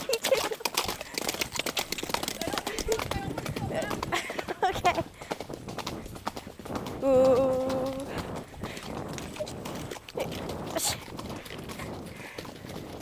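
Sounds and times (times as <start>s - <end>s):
hooves clip-clopping on gravel: 0.0s - 13.0s.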